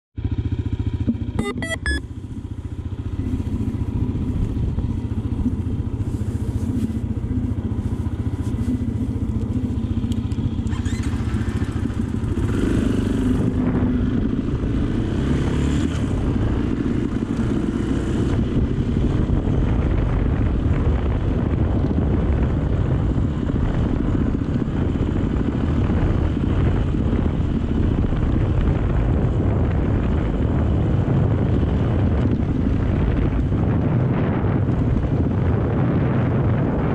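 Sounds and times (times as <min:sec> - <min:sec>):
dirt bike engine running: 0:00.2 - 0:36.9.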